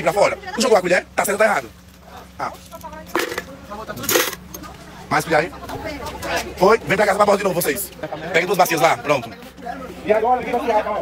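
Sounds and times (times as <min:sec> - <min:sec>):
faint voices: 0:00.0 - 0:11.0
spoons clattering and clinking: 0:03.1 - 0:04.6.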